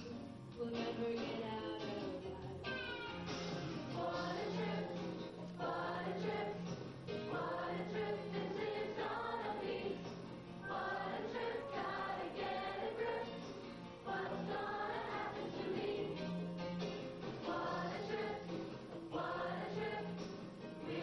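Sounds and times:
youth choir singing: 3.9s - 16.3s, 17.4s - 21.0s.

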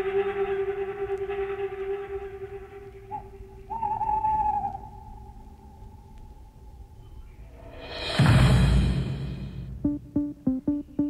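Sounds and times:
held synthesizer tones: 9.7s - 11.0s
higher synth tone bending: 9.7s - 11.0s.

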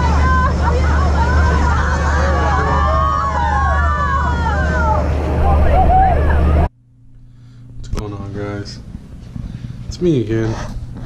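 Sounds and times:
voices: 0.0s - 6.7s
motorboat engine drone: 0.0s - 9.9s
faint steady hum: 0.0s - 11.0s.

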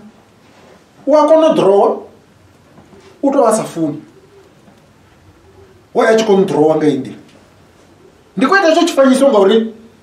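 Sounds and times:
man speaking: 1.0s - 2.2s, 3.2s - 4.1s, 5.9s - 7.3s, 8.4s - 9.9s
dove cooing: 2.6s - 6.6s, 7.4s - 8.5s.

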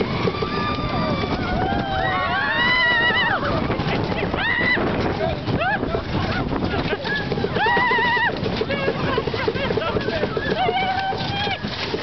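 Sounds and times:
roller coaster clattering on track: 0.0s - 12.0s.

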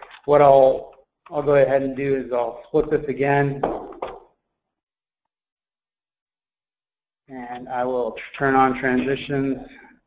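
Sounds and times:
man speaking: 0.1s - 3.8s, 7.3s - 9.9s.

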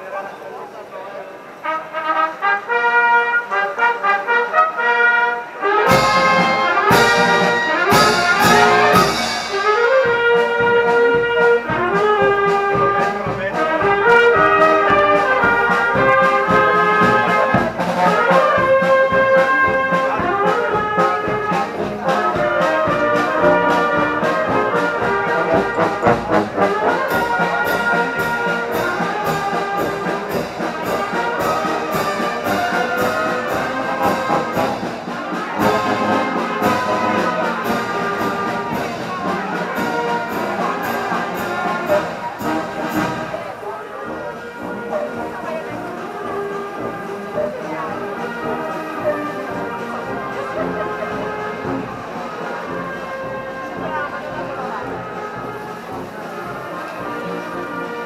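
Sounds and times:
brass band playing a march: 1.5s - 58.0s
drums and cymbals beat: 5.8s - 43.5s.

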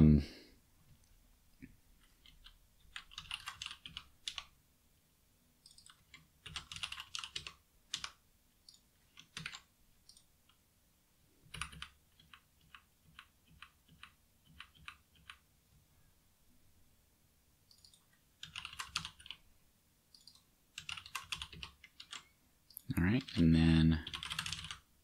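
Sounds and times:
typing on computer keyboard: 2.0s - 4.5s, 5.7s - 10.3s, 11.5s - 15.4s, 17.7s - 19.4s, 20.2s - 22.3s, 24.0s - 24.9s.

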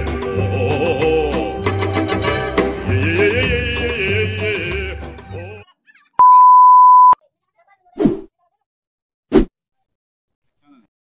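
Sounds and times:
high beep: 6.2s - 7.2s.

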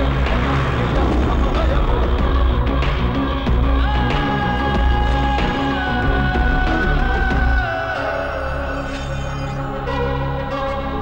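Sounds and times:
film score with bass line: 0.0s - 11.0s.

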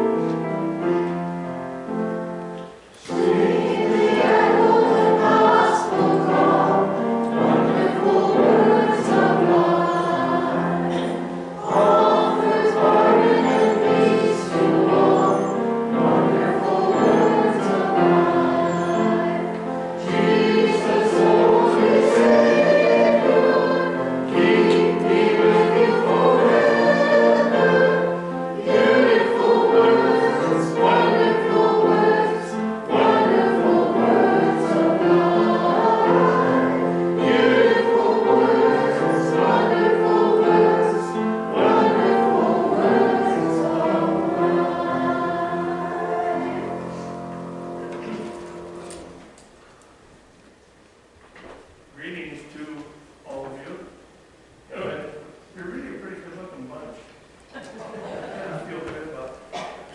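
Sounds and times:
keyboard accompaniment: 0.0s - 49.7s
group singing a hymn: 3.0s - 49.4s.

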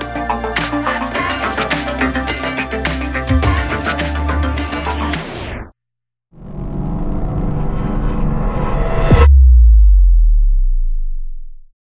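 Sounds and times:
deep electronic sub-bass tone: 6.4s - 11.7s.

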